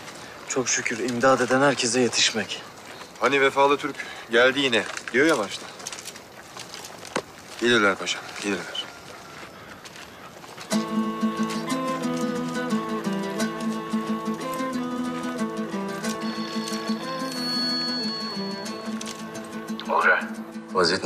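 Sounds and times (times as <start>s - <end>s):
background score music: 10.7s - 21.0s.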